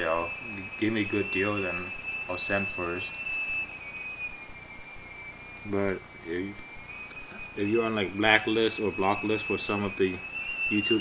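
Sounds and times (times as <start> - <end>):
faint background hiss: 0.0 - 11.0
high-pitched whine: 0.0 - 11.0.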